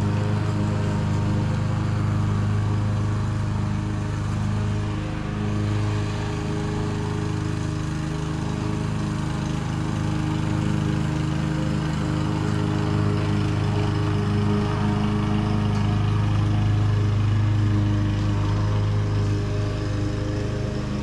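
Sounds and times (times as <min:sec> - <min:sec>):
lawn mower engine running: 0:00.0 - 0:21.0.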